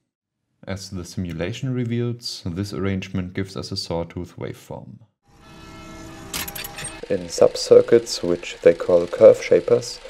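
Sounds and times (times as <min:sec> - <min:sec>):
hum of held tones: 0:05.4 - 0:10.0.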